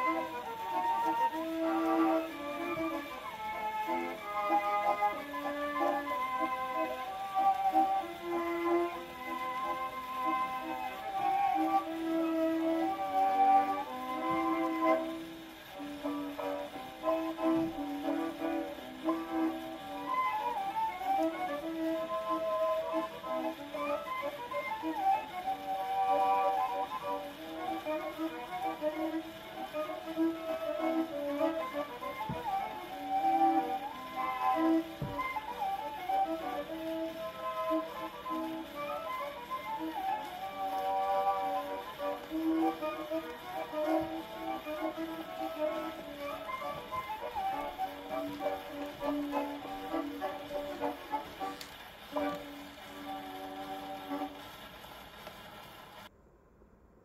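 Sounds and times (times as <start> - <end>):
violin and accordion waltz: 0.0 - 55.0
record surface noise: 0.0 - 56.5.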